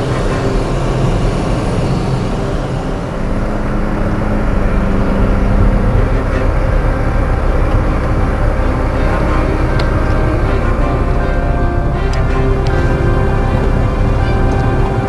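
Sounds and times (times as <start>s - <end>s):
car engine and tyre rumble: 0.0s - 15.0s.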